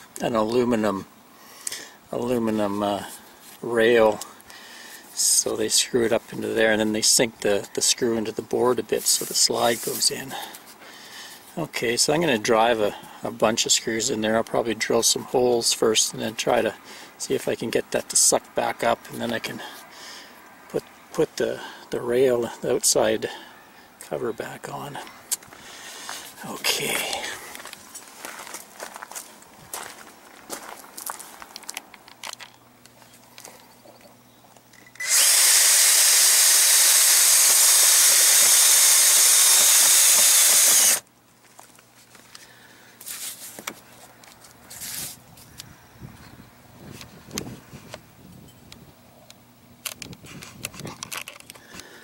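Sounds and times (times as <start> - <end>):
cordless drill running: 34.9 - 41.1.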